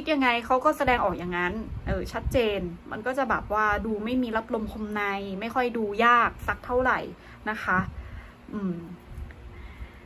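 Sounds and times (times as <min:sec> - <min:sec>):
woman saying hmm: 0:08.5 - 0:09.0.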